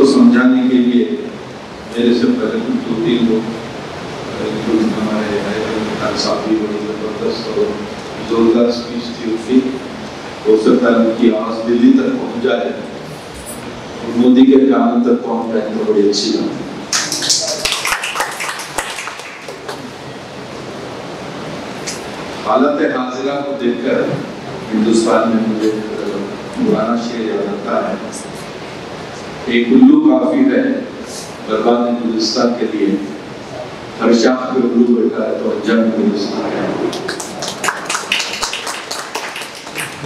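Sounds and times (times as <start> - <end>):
audience clapping: 16.9 - 20.0, 36.9 - 40.0.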